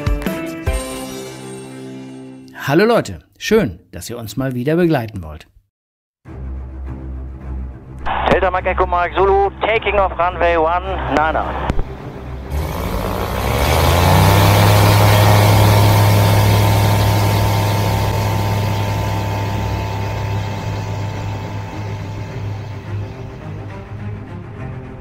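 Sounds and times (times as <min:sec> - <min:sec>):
propeller engine at full power: 0:12.4 - 0:24.1.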